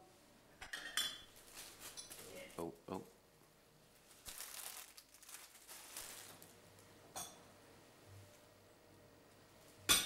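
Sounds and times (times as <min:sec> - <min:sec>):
crockery and cutlery clinking: 0:00.6 - 0:01.3.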